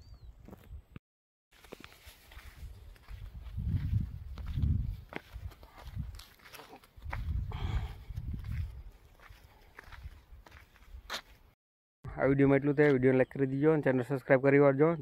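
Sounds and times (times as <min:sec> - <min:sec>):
footsteps on dry soil: 0:01.5 - 0:11.6
wind and handling rumble on microphone: 0:02.6 - 0:06.3, 0:07.0 - 0:09.0.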